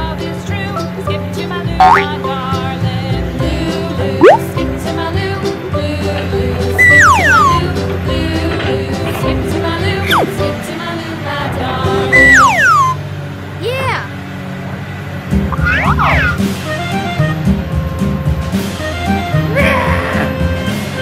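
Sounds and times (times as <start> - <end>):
upbeat children's music: 0.0 - 13.0, 15.3 - 21.0
whistle-like pitch slides: 1.8 - 2.1, 4.2 - 4.5, 6.8 - 7.8, 10.1 - 10.4, 12.1 - 13.0, 15.6 - 16.4.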